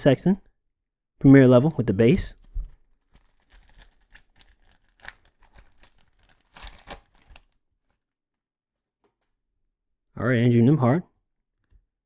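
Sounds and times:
foil wrapper tearing and crinkling: 2.4s - 8.0s.

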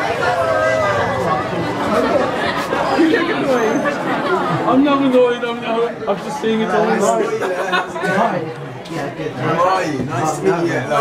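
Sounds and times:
overlapping chatter of many voices: 0.0s - 11.0s.

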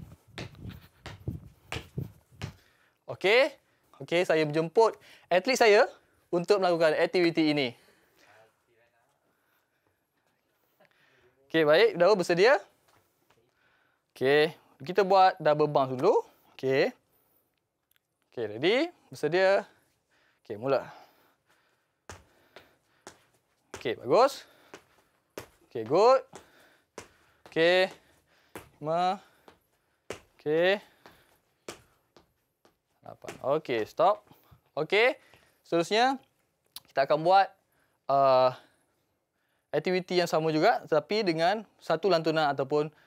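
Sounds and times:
sneakers thudding on wooden floor: 0.0s - 2.6s, 22.1s - 34.2s
shoe thuds on wooden floor: 0.3s - 2.6s, 28.6s - 28.8s.

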